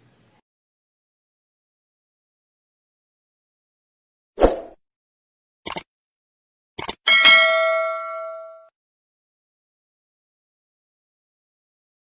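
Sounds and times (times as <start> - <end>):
quick double clicks: 5.6 - 5.9, 6.8 - 7.0
bell ding: 7.1 - 8.7.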